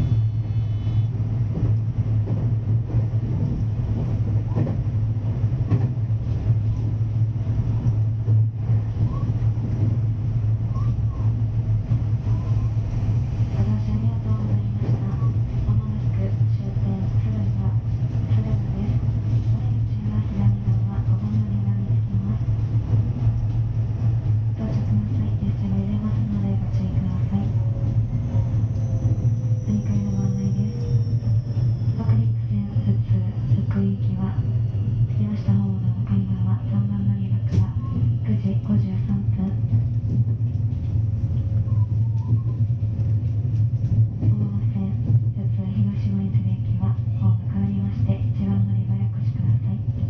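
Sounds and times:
train motors and wheels humming: 0:00.0 - 0:50.0.

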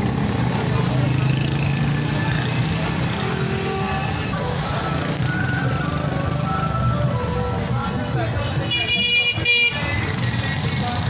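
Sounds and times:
street traffic engines: 0:00.0 - 0:11.0
music playing: 0:03.0 - 0:11.0.

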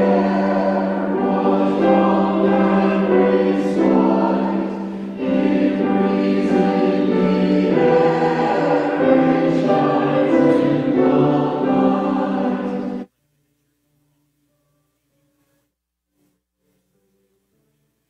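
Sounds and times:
church choir singing in parts: 0:00.0 - 0:13.1.

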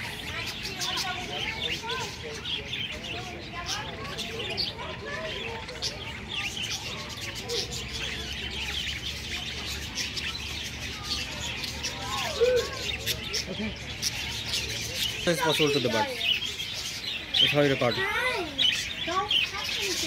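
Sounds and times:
budgerigars chirping and warbling: 0:00.0 - 0:20.0.

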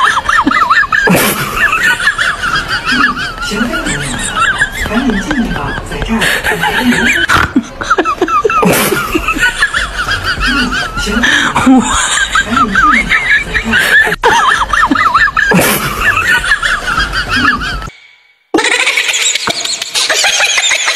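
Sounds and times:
high-pitched wavering laughter: 0:00.0 - 0:05.4, 0:06.5 - 0:17.9, 0:18.6 - 0:20.9.

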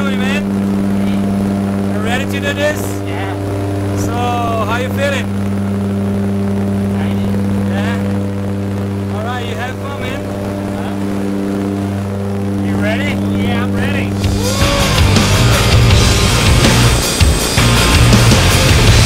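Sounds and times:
propeller engine drone: 0:00.0 - 0:19.0
raised voices: 0:12.7 - 0:18.2.

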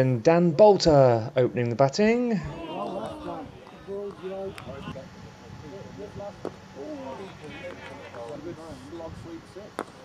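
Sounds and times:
players calling: 0:02.2 - 0:09.8.

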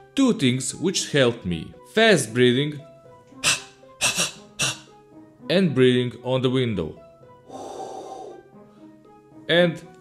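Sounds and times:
man breathing out hard: 0:07.5 - 0:08.5.

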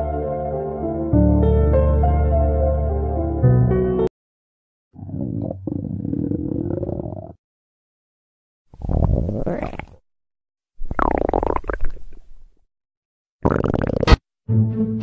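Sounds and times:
stomach growling: 0:05.0 - 0:07.4, 0:08.8 - 0:10.0, 0:10.8 - 0:12.3, 0:13.4 - 0:14.2.

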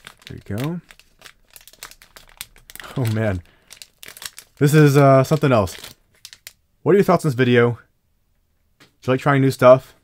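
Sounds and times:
plastic wrapping crinkling: 0:00.0 - 0:06.6.

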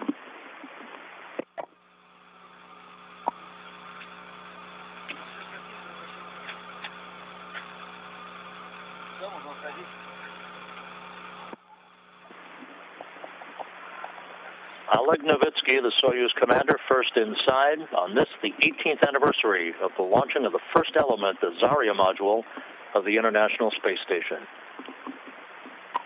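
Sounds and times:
cabin fans humming: 0:01.5 - 0:22.8
faint voices: 0:03.0 - 0:12.0, 0:13.2 - 0:24.0.

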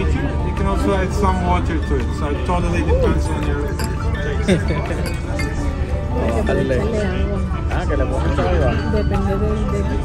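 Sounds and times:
background music: 0:00.0 - 0:10.0
carafe clinking against glass: 0:03.6 - 0:05.8.

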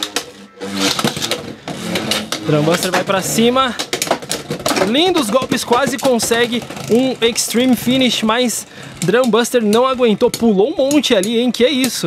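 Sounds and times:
whirring hum of spinning tops: 0:00.0 - 0:12.0.

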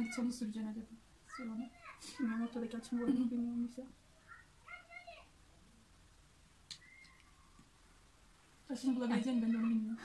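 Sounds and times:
woman speaking: 0:08.7 - 0:10.0.

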